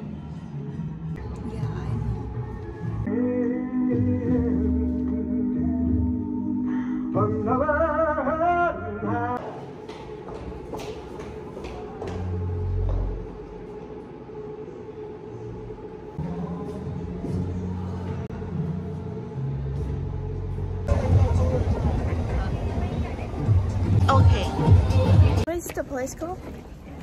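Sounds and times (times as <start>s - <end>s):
street noise: 0.0s - 6.5s, 7.6s - 27.0s.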